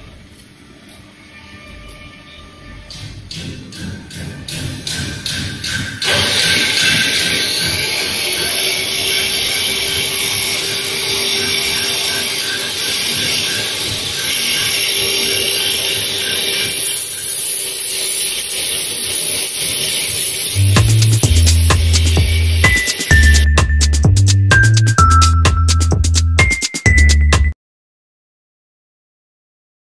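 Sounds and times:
lathe machining hiss: 4.5s - 23.4s.

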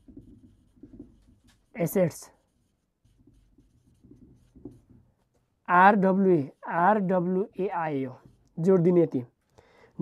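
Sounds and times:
marker scratching on whiteboard: 0.0s - 9.2s.

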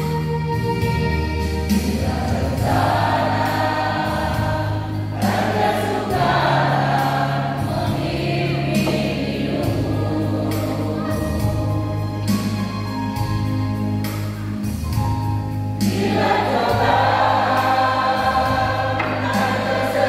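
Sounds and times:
instrumental accompaniment bass notes: 0.0s - 20.0s
choir singing a hymn: 1.7s - 13.6s, 15.8s - 20.0s.

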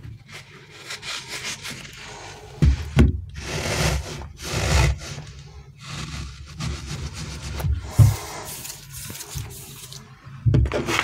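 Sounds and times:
fingers rubbing rubber toy: 3.3s - 10.0s
heavy thumps: 7.6s - 8.3s.

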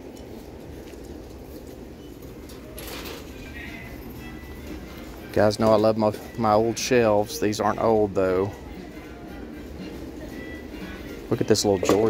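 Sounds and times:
shop room noise rumble: 0.0s - 12.0s.

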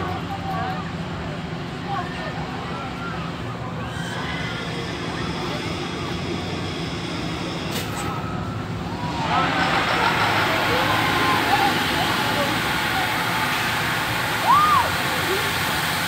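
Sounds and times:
machinery low hum: 0.0s - 16.0s
people's voices: 0.0s - 16.0s.

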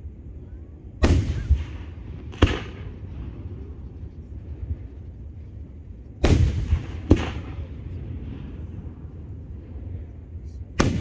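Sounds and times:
firework shells booming: 1.0s - 4.0s, 6.2s - 9.3s, 10.8s - 11.0s
firework crack: 1.0s - 11.0s.

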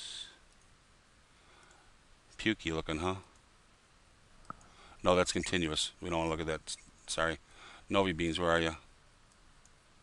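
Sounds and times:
computer mouse click: 1.6s - 1.8s.

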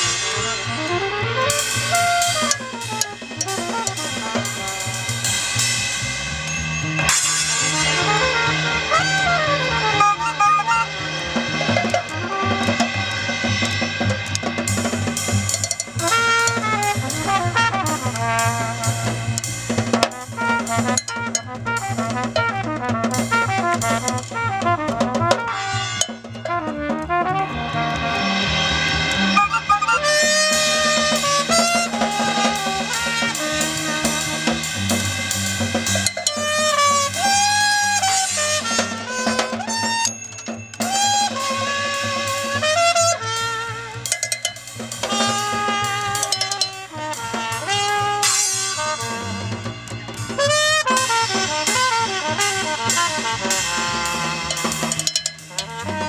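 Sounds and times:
double bass: 0.0s - 40.0s, 40.8s - 56.0s
drum kit snare and cymbals: 0.0s - 56.0s
trumpet: 0.0s - 56.0s.

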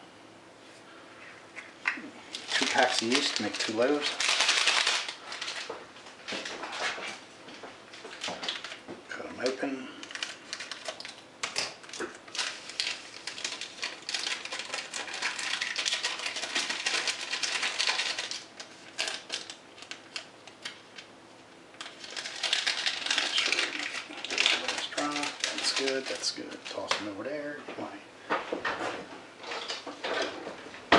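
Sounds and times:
paper packets crinkling: 2.3s - 7.2s, 8.0s - 21.1s, 21.8s - 27.5s.

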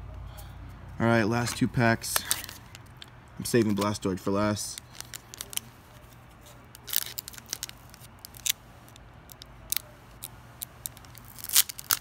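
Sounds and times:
foil wrapper crinkling: 2.1s - 4.0s, 4.6s - 12.0s.

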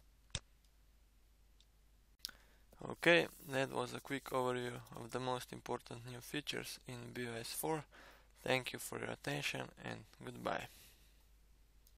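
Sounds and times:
person speaking: 2.2s - 10.8s.

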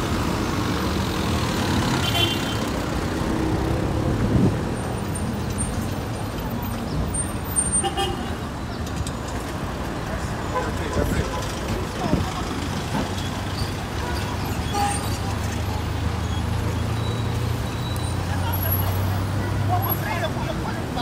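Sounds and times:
traffic rumble: 0.0s - 21.0s
car horn toot: 2.0s - 2.6s.

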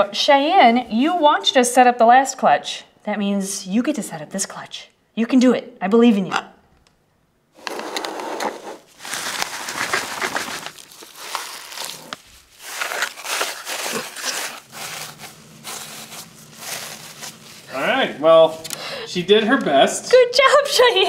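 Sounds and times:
bird feet scratching: 7.6s - 18.8s
granular substrate crunching and rustling: 8.9s - 18.5s.

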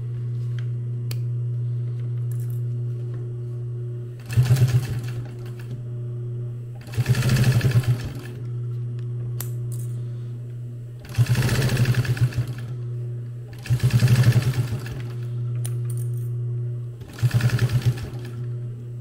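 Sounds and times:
steady machine hum: 0.0s - 19.0s
sewing machine stitching rapidly: 4.2s - 5.3s, 6.8s - 8.4s, 11.0s - 12.7s, 13.6s - 15.2s, 17.0s - 18.4s.

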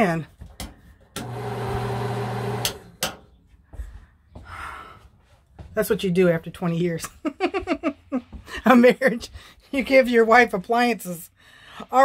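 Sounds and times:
exhaust fan motor humming: 1.2s - 3.2s.

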